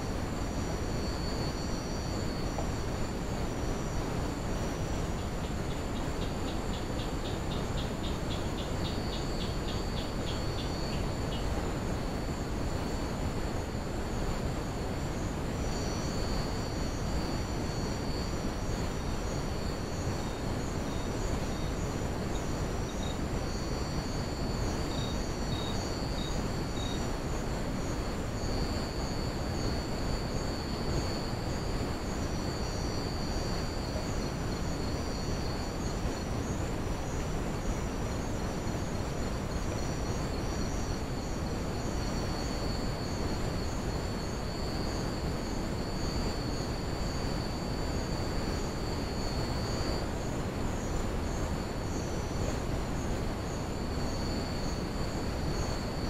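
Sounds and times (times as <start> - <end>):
constant low hiss: 0.0 - 56.0
crickets chirping: 0.0 - 56.0.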